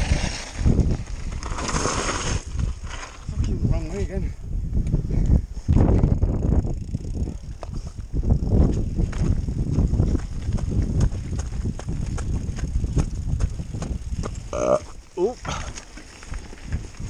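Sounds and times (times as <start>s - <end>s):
bike rattling clicks: 4.8s - 14.5s
tyres crunching over loose stones: 8.5s - 17.0s.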